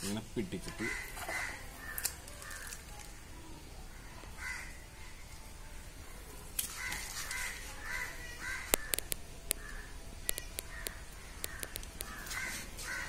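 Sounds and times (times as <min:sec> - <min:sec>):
birds calling: 0:00.7 - 0:03.2, 0:06.0 - 0:13.0
sharp clicks: 0:08.6 - 0:12.4.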